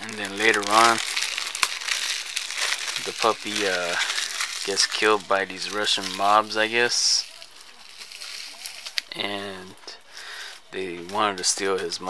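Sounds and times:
plastic crinkling and rustling: 0:00.0 - 0:12.0.

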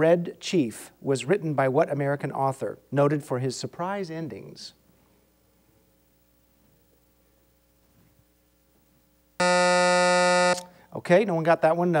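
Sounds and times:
electronic buzzer tone: 0:09.4 - 0:10.7.

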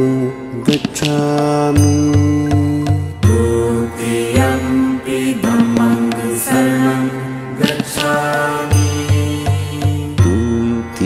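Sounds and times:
low beats: 0:00.0 - 0:11.0
mantra-style chanting: 0:00.0 - 0:11.0.

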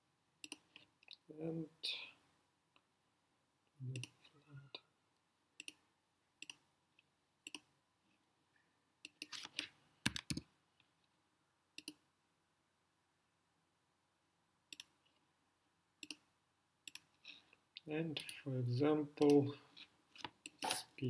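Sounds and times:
computer mouse clicking: 0:00.4 - 0:01.2, 0:05.6 - 0:05.8, 0:06.4 - 0:06.6, 0:07.4 - 0:07.7, 0:09.0 - 0:10.5, 0:11.8 - 0:12.0, 0:14.7 - 0:14.9, 0:16.0 - 0:16.2, 0:16.9 - 0:17.1, 0:20.2 - 0:20.8.

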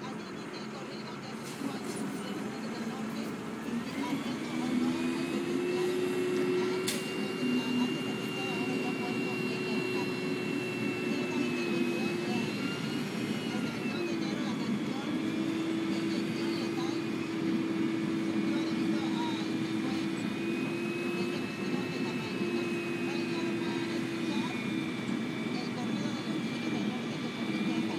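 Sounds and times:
truck engine drone: 0:00.0 - 0:27.9
whining loading drive: 0:00.1 - 0:27.9.

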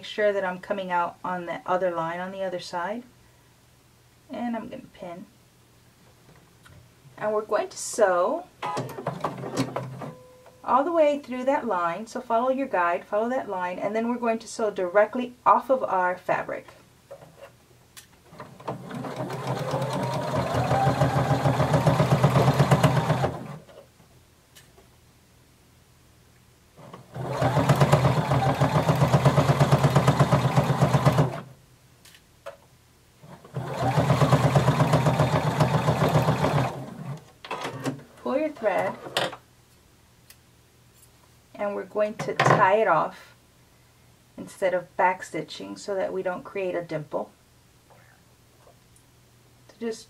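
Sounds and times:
sewing machine stitching: 0:08.7 - 0:10.2, 0:18.3 - 0:23.7, 0:26.8 - 0:31.5, 0:33.3 - 0:37.2.

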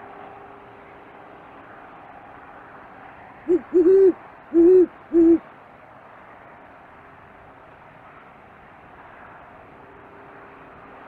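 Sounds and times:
owl hooting: 0:03.5 - 0:05.4.

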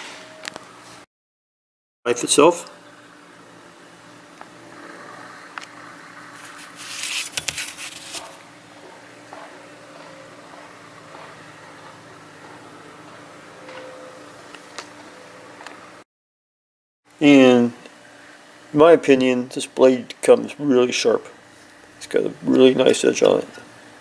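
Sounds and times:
machine hum: 0:02.2 - 0:16.0.

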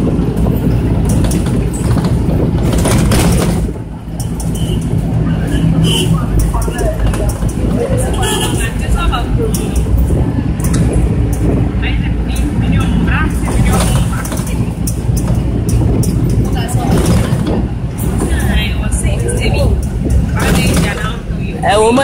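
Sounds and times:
engine and road rumble: 0:00.0 - 0:22.0
indistinct voices talking: 0:00.0 - 0:22.0.

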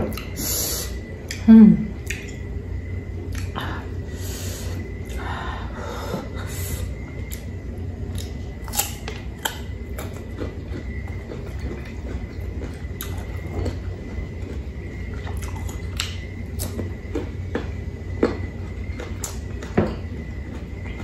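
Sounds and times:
crunching and chewing fruit: 0:00.0 - 0:05.3, 0:06.8 - 0:21.0
low steady hum: 0:00.0 - 0:21.0
steady low rumble: 0:00.0 - 0:21.0.

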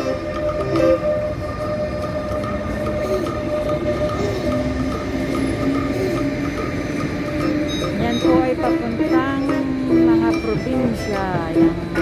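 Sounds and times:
locomotive electric whine: 0:00.0 - 0:12.0
train wheels rumbling: 0:00.0 - 0:12.0.

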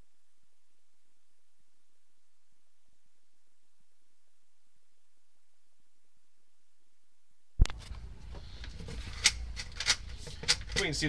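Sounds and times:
man speaking: 0:10.8 - 0:11.0.

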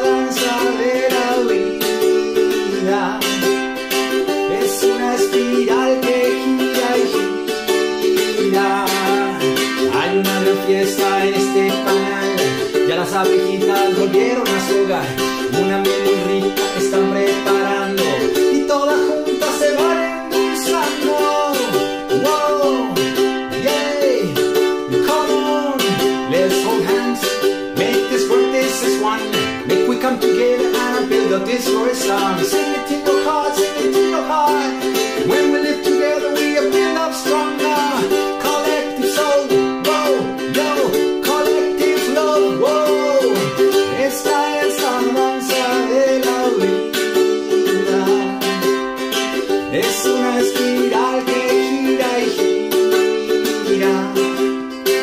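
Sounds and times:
man singing: 0:00.0 - 0:55.0
ukulele strumming: 0:00.0 - 0:55.0.

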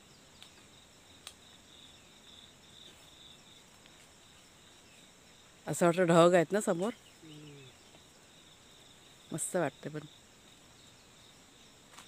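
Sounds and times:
insect chirring trill: 0:00.0 - 0:12.0.

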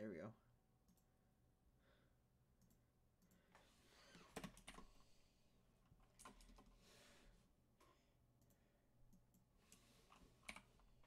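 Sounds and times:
keyboard typing: 0:04.3 - 0:04.9, 0:10.1 - 0:11.0.

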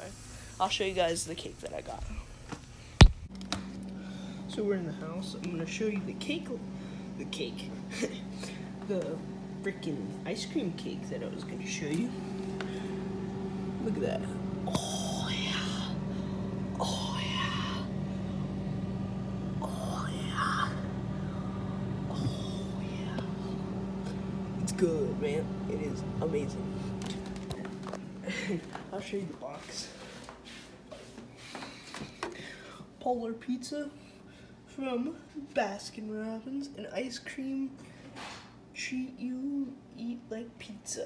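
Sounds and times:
steady low hum: 0:00.0 - 0:41.0
breathy vocal sounds: 0:14.6 - 0:18.0, 0:19.6 - 0:24.2.

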